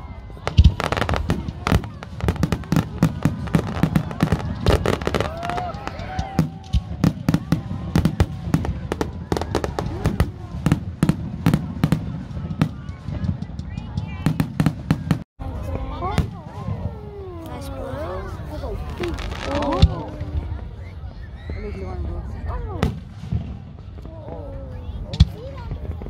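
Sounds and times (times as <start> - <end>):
fireworks bangs and crackles: 0.0 - 26.0.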